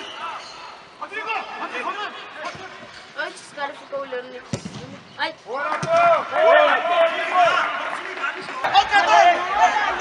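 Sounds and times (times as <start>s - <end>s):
football being kicked: 4.5s - 5.0s.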